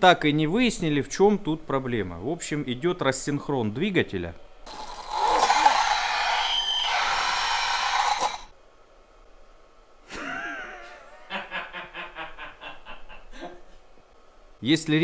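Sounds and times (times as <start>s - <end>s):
electric motor rough noise: 4.7s - 8.5s
man laughing: 10.1s - 13.7s.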